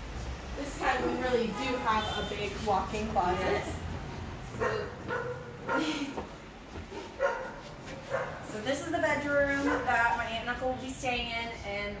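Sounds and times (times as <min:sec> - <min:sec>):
dog barking: 0:04.6 - 0:05.9, 0:07.0 - 0:08.4, 0:09.6 - 0:09.9.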